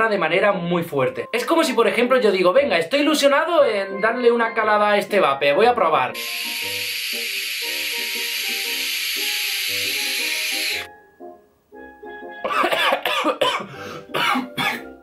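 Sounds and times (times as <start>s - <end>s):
background music: 0.0s - 15.0s
vape drag hissing: 6.2s - 10.9s
person coughing: 12.5s - 15.0s.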